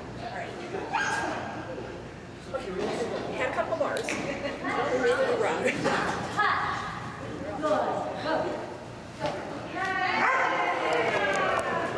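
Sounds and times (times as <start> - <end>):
voices: 0.2 - 11.9.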